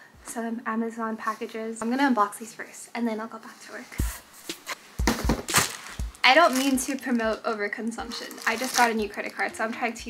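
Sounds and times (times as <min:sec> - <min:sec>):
cardboard box thumping: 0:04.5 - 0:06.2
plastic mailer crinkling: 0:05.0 - 0:10.0.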